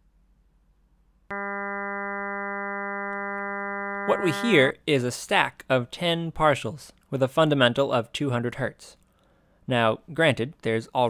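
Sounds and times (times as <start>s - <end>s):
steady synthesised tone: 1.3s - 4.7s.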